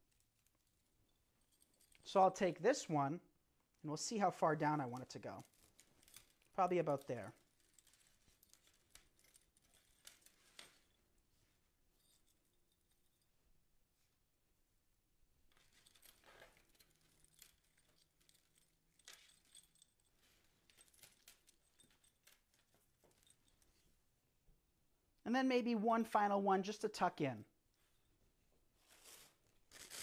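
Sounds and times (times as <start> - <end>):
faint rustles and small clicks: 0.0 - 2.6, 4.8 - 14.3, 15.4 - 24.2, 27.6 - 30.0.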